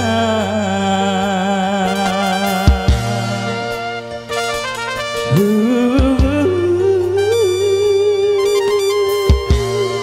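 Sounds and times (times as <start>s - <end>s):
band lead melody: 0.0s - 10.0s
keyboard backing: 0.0s - 10.0s.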